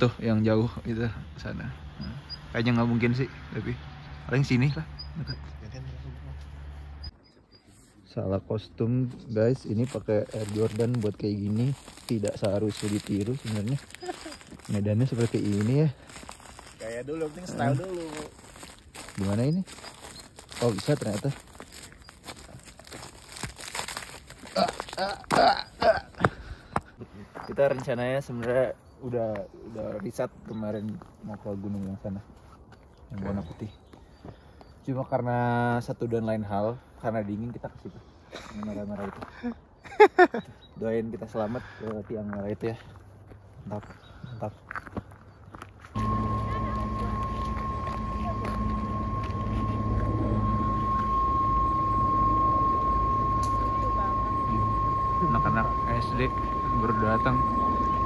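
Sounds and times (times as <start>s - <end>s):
footsteps crunching on snow: 9.0s - 25.4s, 44.6s - 58.0s
bus diesel engine idling: 46.0s - 58.0s
high engine whine: 46.0s - 58.0s.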